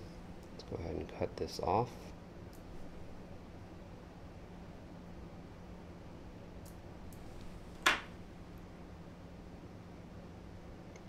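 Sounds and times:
faint steady low hum: 0.0 - 11.0.

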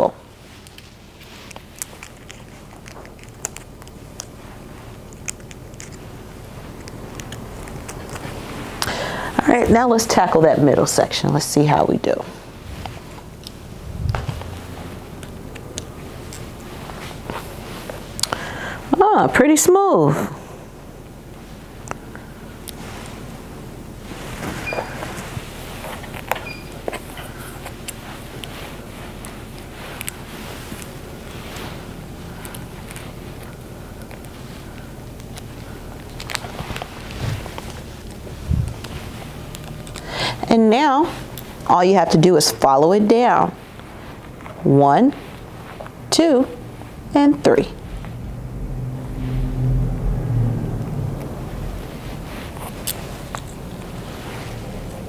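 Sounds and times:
hair rustling while combed: 0.2 - 10.3, 11.0 - 18.2, 21.2 - 55.0
comb and clips clicking: 0.6 - 8.9.

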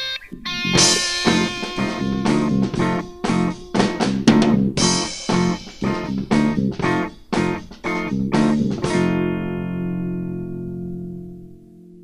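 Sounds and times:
guitar chord ringing: 0.0 - 12.0.

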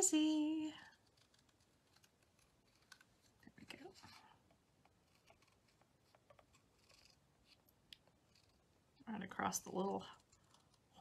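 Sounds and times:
marker scratching on card: 1.0 - 4.2, 5.0 - 7.6, 8.2 - 8.6.

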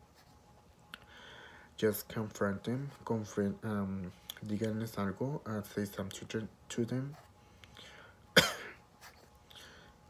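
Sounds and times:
man coughing: 8.3 - 8.8.

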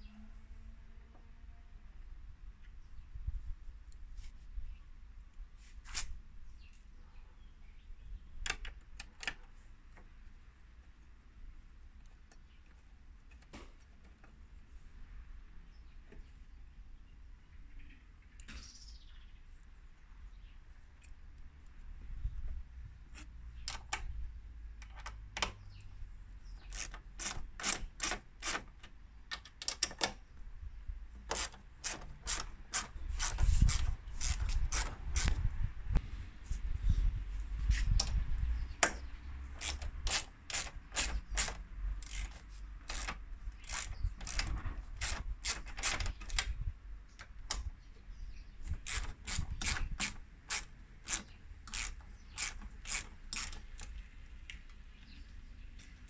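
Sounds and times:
socket ratchet clicking: 26.6 - 30.2, 31.2 - 35.5, 38.8 - 46.6, 48.6 - 54.0.

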